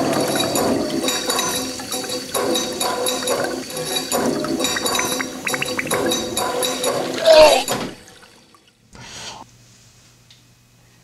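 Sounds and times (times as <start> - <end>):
water rushing and splashing: 0.0 - 8.6.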